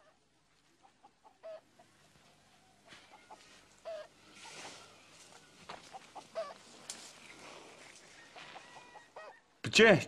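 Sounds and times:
chicken clucking: 0.8 - 9.4.

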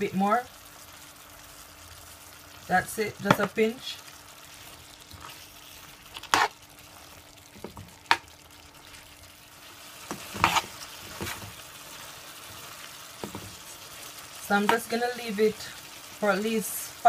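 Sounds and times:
stir-fry sizzling in a pan: 0.0 - 17.0.

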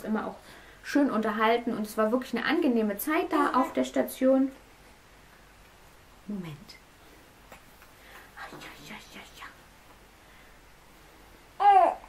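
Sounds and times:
soft whispering: 8.0 - 9.8.

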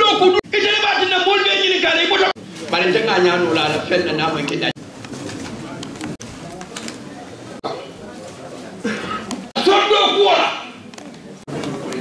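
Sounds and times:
man speaking: 0.0 - 4.8, 9.6 - 10.8
faint indistinct voices: 0.0 - 12.0.

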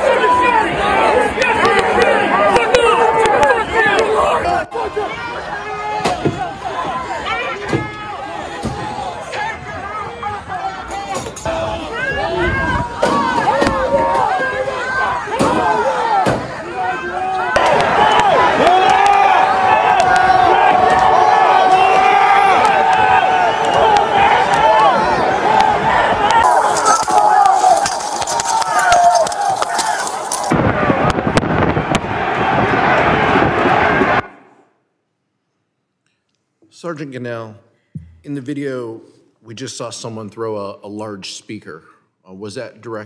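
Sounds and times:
crowd shouting and yelling: 0.0 - 34.7.

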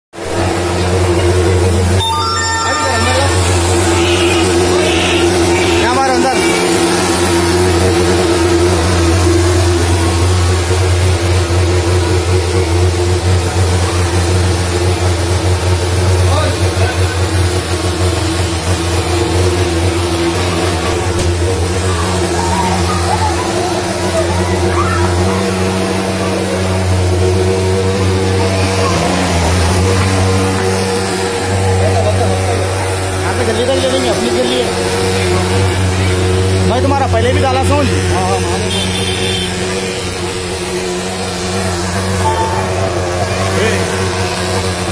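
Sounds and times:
fogging machine droning: 0.5 - 44.9.

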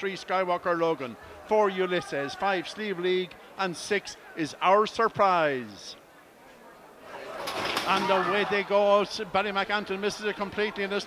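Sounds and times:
starting traps clatter: 7.3 - 8.4.

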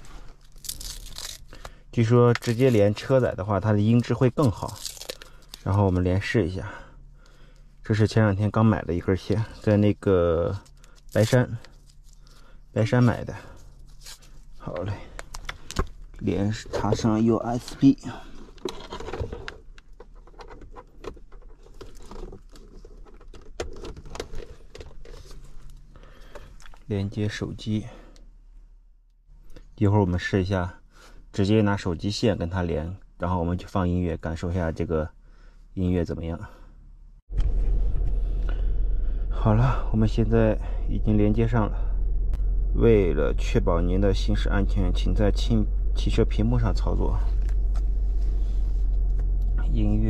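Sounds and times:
cable clicks and rustles: 0.0 - 3.2, 3.8 - 6.0, 13.7 - 26.9
steady low hum: 0.0 - 23.2, 35.1 - 50.0.

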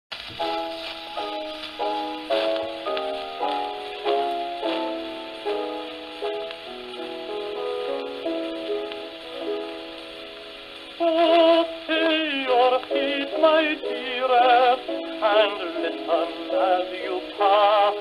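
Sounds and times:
piano chords: 0.1 - 18.0
record hiss and crackle: 0.1 - 18.0.

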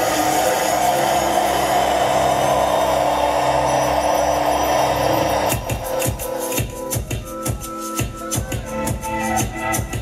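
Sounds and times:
synthesizer drone: 0.0 - 10.0
throbbing bass: 0.0 - 10.0.

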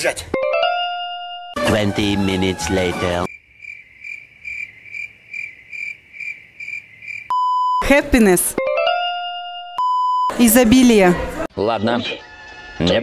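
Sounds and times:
voice: 1.6 - 3.3, 7.8 - 8.6, 10.4 - 12.2
cricket chirping: 3.3 - 7.8
steady beep: 7.3 - 8.0, 9.8 - 10.5.

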